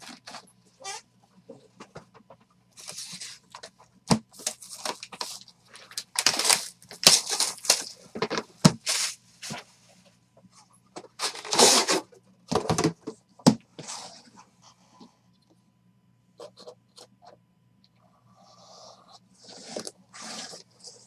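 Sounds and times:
cardboard scraping and tearing: 6.2s - 8.0s, 11.2s - 12.1s, 19.4s - 21.0s.

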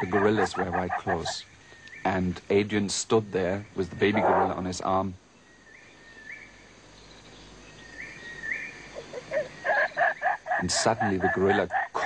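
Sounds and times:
gorilla calling: 0.0s - 1.4s, 3.8s - 4.6s, 8.9s - 12.0s
rising bird chirps: 3.2s - 12.0s.

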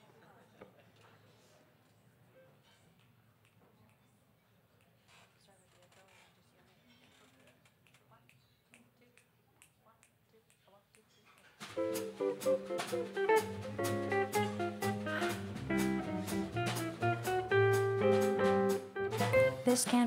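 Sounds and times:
drums with cymbal beat: 11.6s - 20.0s
guitar chords: 11.8s - 20.0s
upright bass: 11.8s - 20.0s.

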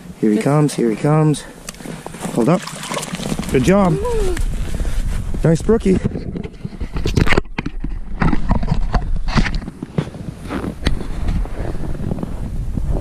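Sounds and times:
wind rumble on microphone: 1.8s - 13.0s
crunching on packed snow: 9.2s - 12.6s.

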